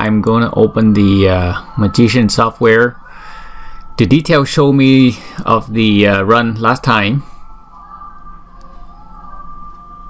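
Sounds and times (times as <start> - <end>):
faint high whine: 0.0 - 10.0
low steady hum: 0.0 - 10.0.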